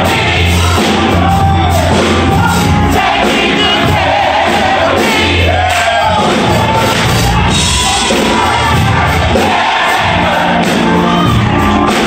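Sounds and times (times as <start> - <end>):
church choir singing: 0.0 - 12.0
instrumental backing: 0.0 - 12.0.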